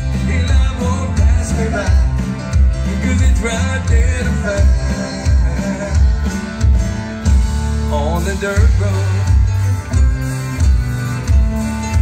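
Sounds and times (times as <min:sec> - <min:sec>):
country band playing: 0:00.0 - 0:12.0.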